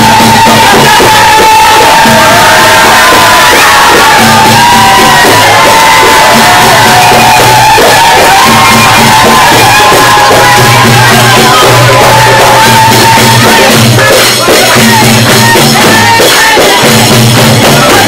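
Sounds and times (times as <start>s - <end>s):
crowd shouting and cheering: 0.0s - 18.0s
steady drum rhythm: 0.0s - 18.0s.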